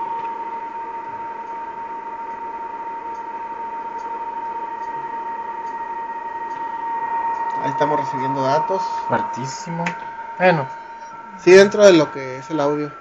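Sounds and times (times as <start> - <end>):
faint higher radio tone: 0.0 - 13.0
strong steady radio tone: 5.9 - 13.0.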